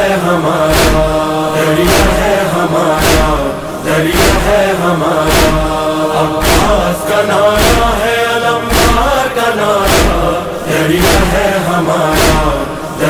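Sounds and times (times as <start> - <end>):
men chanting in unison: 0.0 - 13.0
rhythmic chest-beating: 0.0 - 13.0.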